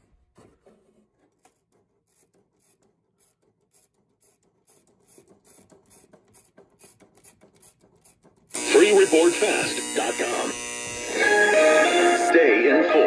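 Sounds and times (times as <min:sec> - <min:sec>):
radio static crackling: 0:08.6 - 0:13.0
radio voice over music: 0:08.7 - 0:10.6, 0:12.2 - 0:13.0.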